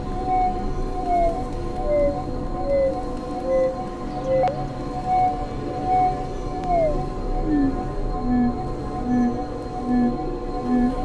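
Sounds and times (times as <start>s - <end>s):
electronic drone music: 6.8s - 11.0s.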